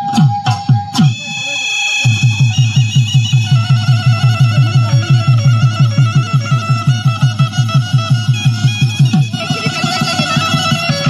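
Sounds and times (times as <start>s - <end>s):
fast drum beat: 0.0s - 11.0s
high sustained melody: 0.0s - 11.0s.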